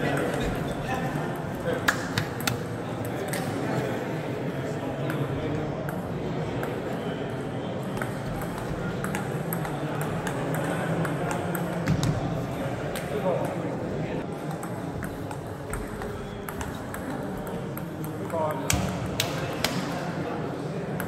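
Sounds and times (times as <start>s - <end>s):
background talk: 0.0s - 21.0s
table tennis balls clicking: 7.9s - 12.0s, 14.3s - 19.8s.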